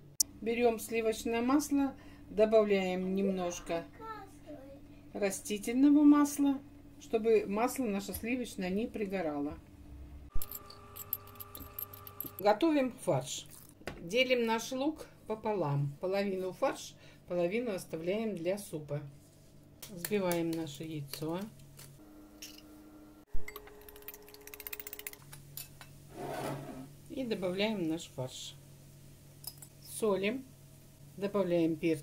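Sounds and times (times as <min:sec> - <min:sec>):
faint steady hum: 0:00.0 - 0:32.0.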